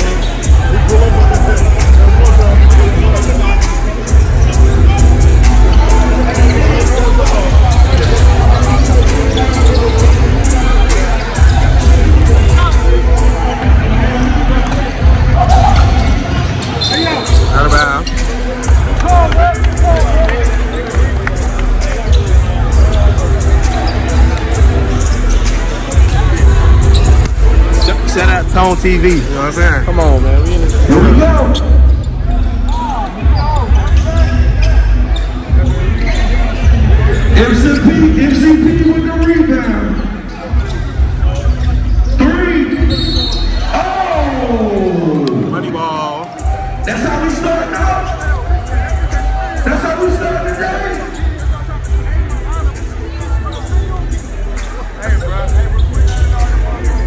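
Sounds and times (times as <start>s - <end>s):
sneaker squeak: 0.0s - 0.5s, 5.4s - 12.7s, 14.6s - 18.4s, 22.0s - 28.1s, 30.4s - 43.8s, 50.0s - 51.6s, 52.6s - 57.0s
bass-heavy music playing loudly: 0.0s - 45.8s, 46.4s - 57.0s
loud voices: 0.0s - 57.0s.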